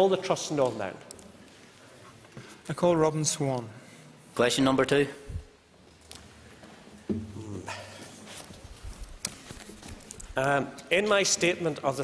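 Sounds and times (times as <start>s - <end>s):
soft rustling: 7.7s - 11.2s.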